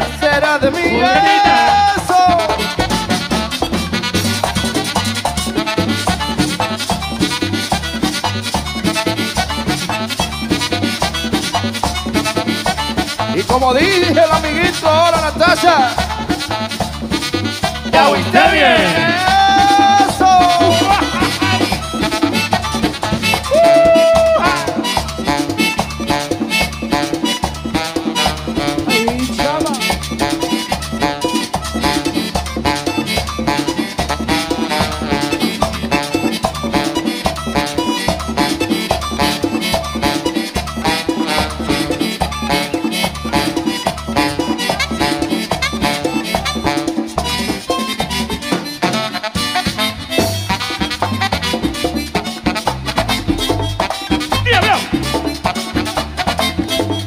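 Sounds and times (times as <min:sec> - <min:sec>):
button accordion: 0:00.0 - 0:23.5, 0:24.2 - 0:57.0
bass guitar: 0:00.0 - 0:57.0
saxophone: 0:00.0 - 0:57.0
tambora and congas: 0:00.0 - 0:57.0.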